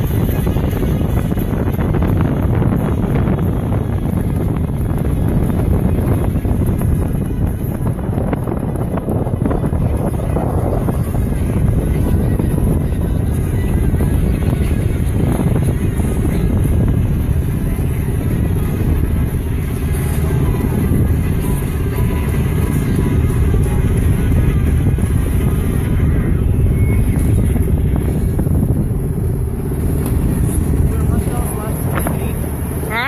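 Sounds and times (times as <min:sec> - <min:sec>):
boat engine drone: 0:00.0 - 0:33.0
wind buffeting microphone: 0:00.0 - 0:33.0.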